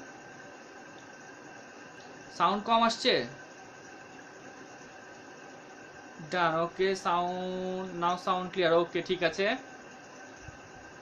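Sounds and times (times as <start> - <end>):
microphone hiss: 0.0 - 11.0.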